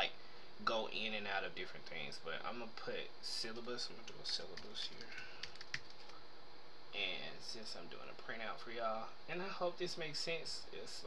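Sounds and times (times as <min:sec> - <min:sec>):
keyboard keys tapping: 0:04.5 - 0:06.1.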